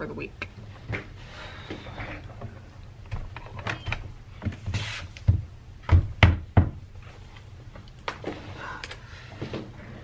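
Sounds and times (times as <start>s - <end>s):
laptop knocks and thumps: 5.3s - 6.8s.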